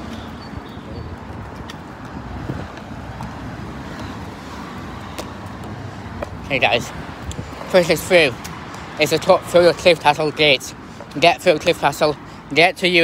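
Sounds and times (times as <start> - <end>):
road traffic rumble: 0.0 - 13.0.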